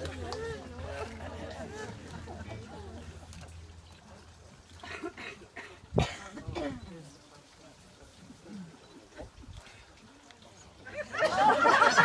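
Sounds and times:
faint murmuring voices: 0.0 - 12.0.

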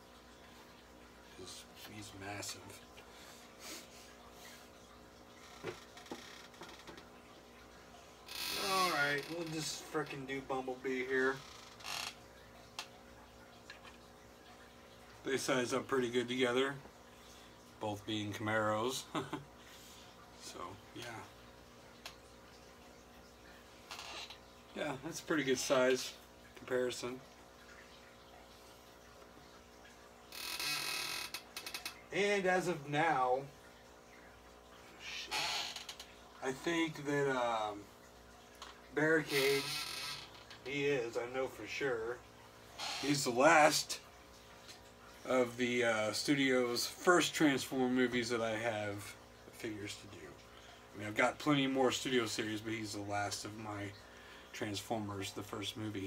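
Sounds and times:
quiet room hum: 0.0 - 56.0.

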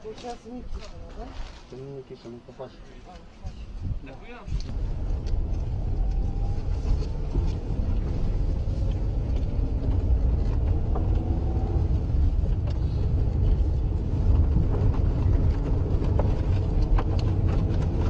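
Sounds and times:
vehicle engine and road noise: 2.9 - 18.0.

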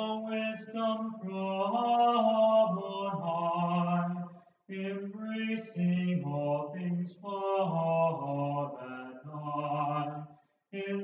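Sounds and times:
person chanting: 0.0 - 11.0.

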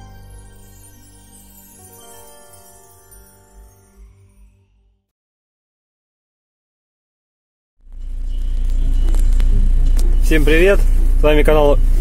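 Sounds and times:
diesel engine idling: 8.0 - 12.0.

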